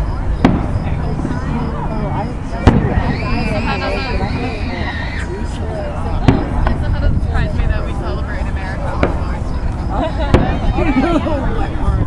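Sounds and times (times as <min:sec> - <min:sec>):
distant fireworks bangs: 0:00.0 - 0:04.5, 0:06.2 - 0:07.5, 0:08.9 - 0:10.8
onlookers chattering: 0:00.0 - 0:12.0.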